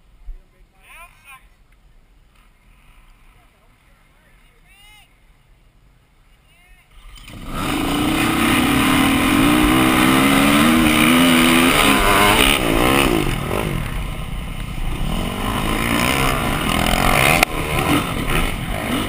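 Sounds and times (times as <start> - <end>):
dirt bike engine revving: 7.0 - 19.0.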